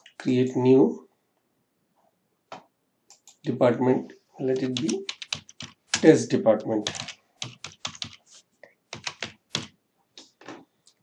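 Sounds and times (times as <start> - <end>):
typing on computer keyboard: 4.5 - 8.3, 8.9 - 9.8.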